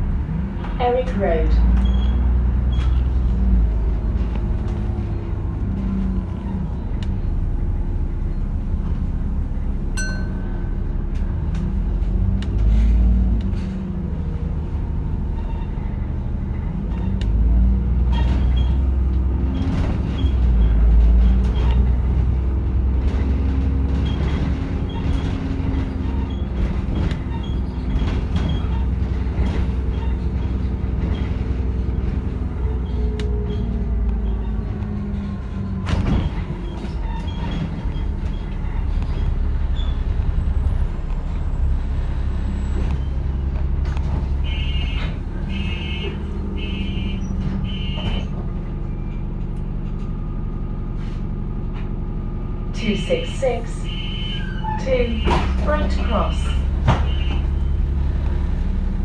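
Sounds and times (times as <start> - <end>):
bus diesel engine rumble: 0.0 - 59.0.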